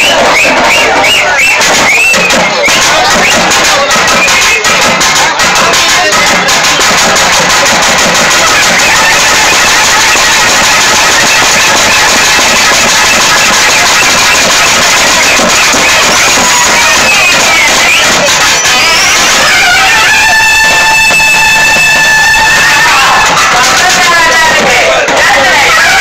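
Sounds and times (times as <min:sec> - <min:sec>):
barrel drums played fast: 0:00.0 - 0:26.0
reed horn melody: 0:08.4 - 0:23.5.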